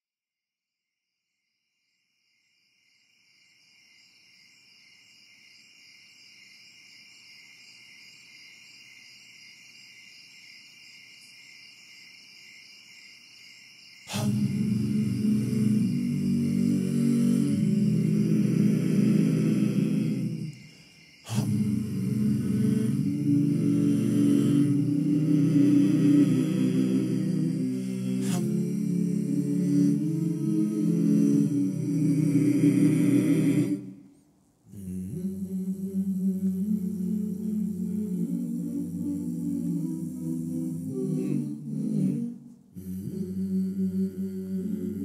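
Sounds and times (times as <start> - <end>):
crickets chirping: 1.0 - 45.0
a cappella voices holding chord: 14.1 - 45.0.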